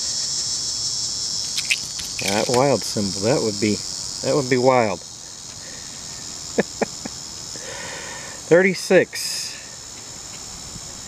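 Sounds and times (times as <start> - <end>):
high-pitched insect chorus: 0.0 - 11.0.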